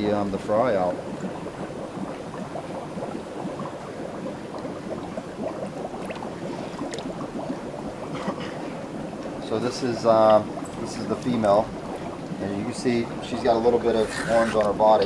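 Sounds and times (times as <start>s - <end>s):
running and bubbling water: 0.0s - 15.0s.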